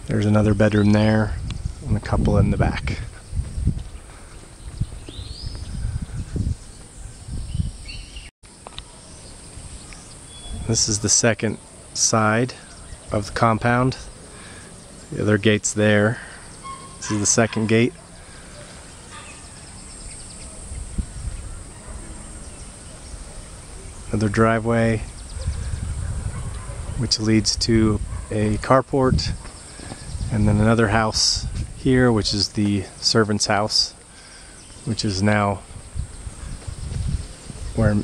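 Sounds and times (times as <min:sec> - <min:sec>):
high bird calls: 0:03.1 - 0:12.0, 0:12.6 - 0:13.3, 0:14.0 - 0:27.1
faint bird calls: 0:16.1 - 0:24.2.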